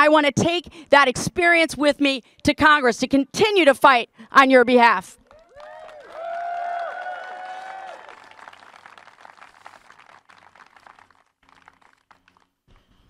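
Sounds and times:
crowd applauding: 5.2 - 12.6
crowd cheering with whoops: 5.3 - 8.9.

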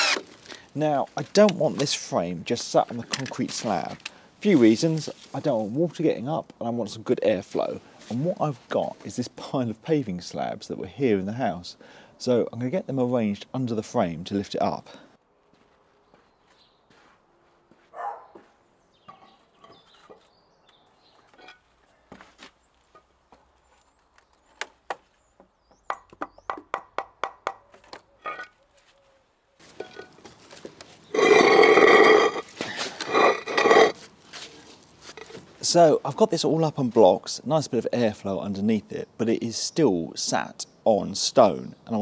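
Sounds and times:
loud rough grating noise: 0.0 - 0.3, 31.1 - 34.0
hammer tapping concrete slab: 25.8 - 27.6.

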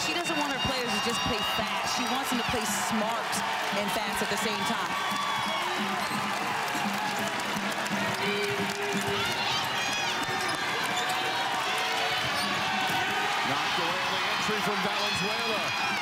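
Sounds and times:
murmur of crowd: 0.0 - 16.0
sneaker squeaks: 5.8 - 6.4, 9.8 - 11.4.

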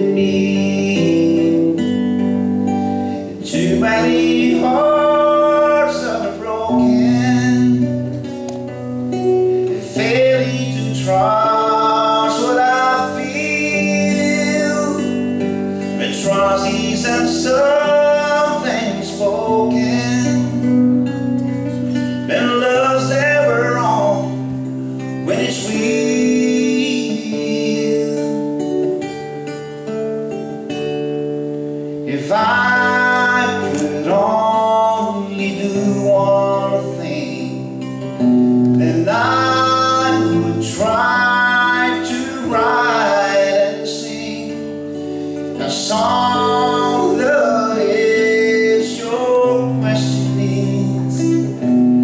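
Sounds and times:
man singing: 0.0 - 2.0, 3.3 - 8.3, 9.6 - 20.8, 22.2 - 28.8, 32.0 - 52.0
acoustic guitar strumming: 0.0 - 52.0.

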